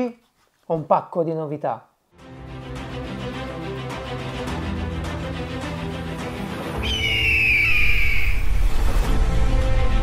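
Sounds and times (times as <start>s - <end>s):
theme music: 2.2s - 10.0s
bird of prey screech: 6.8s - 8.6s.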